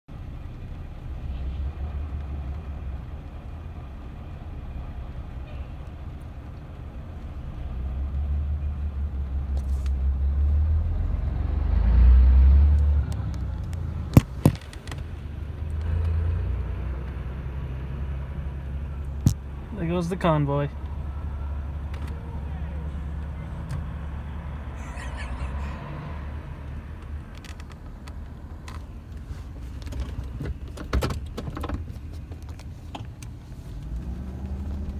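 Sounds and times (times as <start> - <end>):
muffled truck engine rumble: 0.1 - 34.9.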